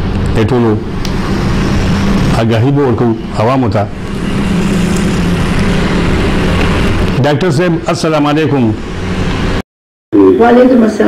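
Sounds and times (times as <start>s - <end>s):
machine hum: 0.0s - 9.6s
rush of noise: 0.0s - 9.6s.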